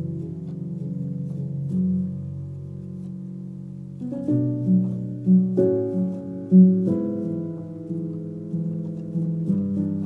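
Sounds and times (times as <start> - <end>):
slow solo piano piece: 0.0 - 10.0.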